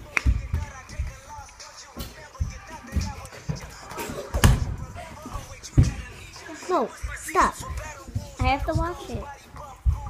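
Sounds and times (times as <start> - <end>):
faint music: 0.0 - 10.0
feet thudding on floor: 0.0 - 10.0.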